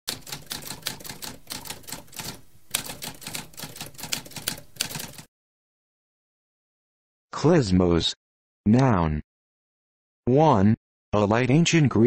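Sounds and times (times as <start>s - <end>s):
typewriter typing: 0.1s - 5.3s.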